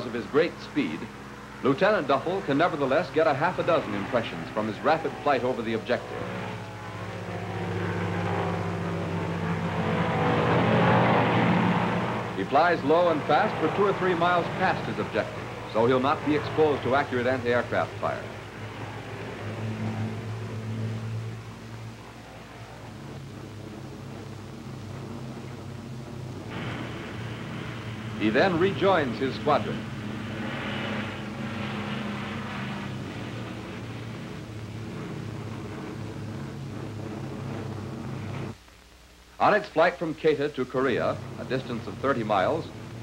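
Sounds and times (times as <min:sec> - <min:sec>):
propeller plane engine drone: 0:00.0 - 0:38.6, 0:40.2 - 0:43.0
even hiss: 0:00.0 - 0:43.0.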